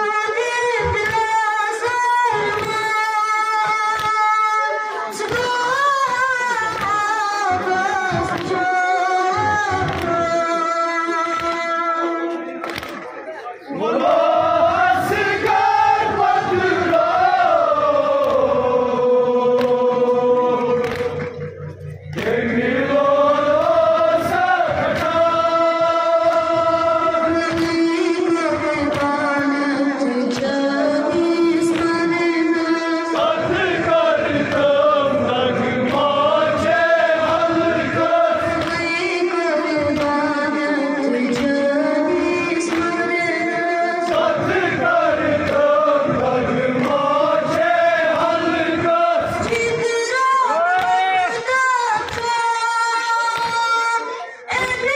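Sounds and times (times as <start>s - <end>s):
person singing a lament: 22.2s - 54.9s.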